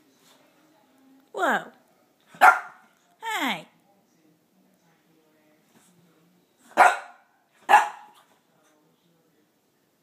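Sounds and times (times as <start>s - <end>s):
dog barking: 2.4s - 2.9s, 6.7s - 8.3s.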